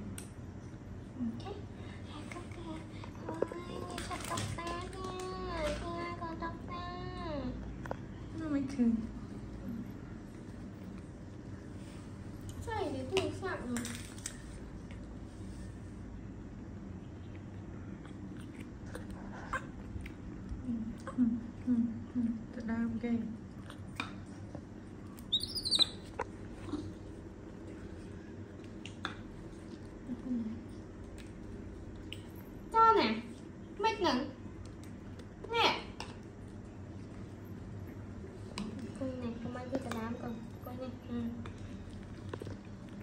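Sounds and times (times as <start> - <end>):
baby monkey squeaking: 25.3 - 26.2.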